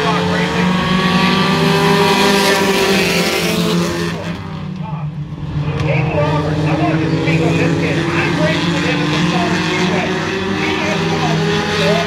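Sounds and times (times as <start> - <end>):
race car engines: 0.0 - 12.0.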